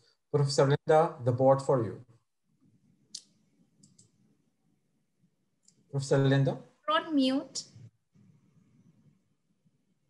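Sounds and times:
faint sharp clicks: 3.1s - 4.2s.

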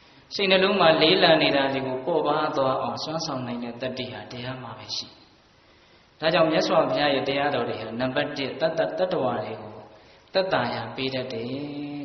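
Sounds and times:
man chanting: 0.3s - 5.2s, 6.2s - 12.0s.

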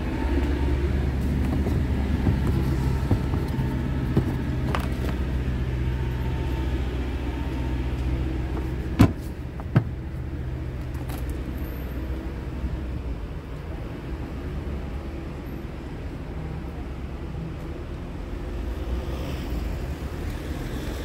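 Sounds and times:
diesel engine idling: 0.0s - 15.3s.

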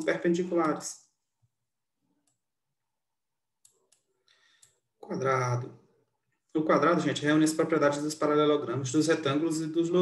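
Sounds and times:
computer mouse clicks: 2.2s - 2.4s, 3.6s - 4.8s.

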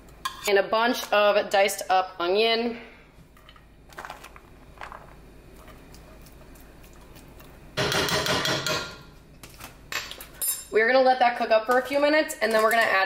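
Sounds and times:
spoon scraping and rustling: 3.3s - 7.6s.

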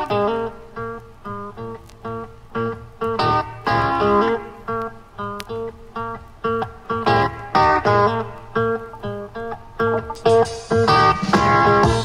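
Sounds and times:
guitar playing clipped chords: 0.0s - 12.0s.

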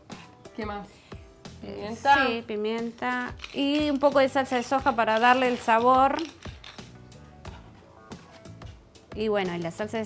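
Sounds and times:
soft background music: 0.0s - 10.0s
pepper mill grinding clicks: 3.3s - 7.0s.

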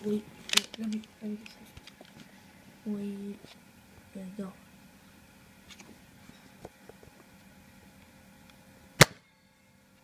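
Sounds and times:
foam dart pistol pop: 9.0s - 9.2s.

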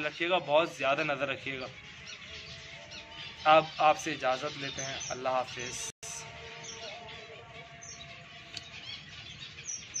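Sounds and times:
finches chirping: 0.0s - 10.0s.

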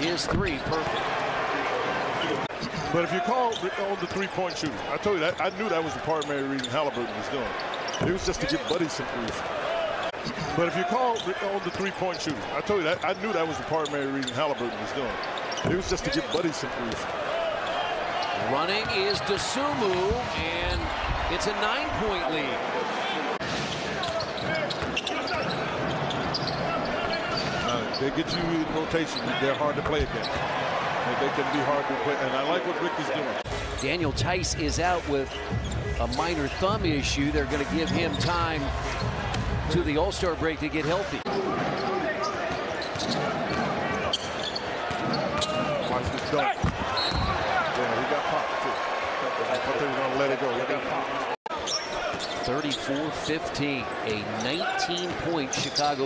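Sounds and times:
arena crowd noise: 0.0s - 56.0s
sneaker squeaks: 6.2s - 8.9s, 13.8s - 16.6s, 23.6s - 30.4s, 41.3s - 47.8s, 51.5s - 53.2s, 53.9s - 56.0s.

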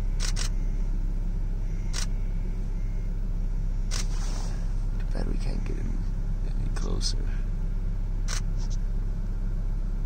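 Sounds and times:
car idling rumble: 0.0s - 10.0s.

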